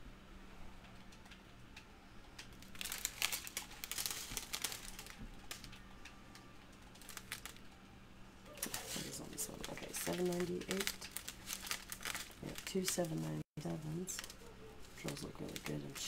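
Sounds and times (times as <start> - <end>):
faint steady hum: 0.0 - 16.0
plastic bags crinkling: 2.4 - 7.8, 8.5 - 16.0.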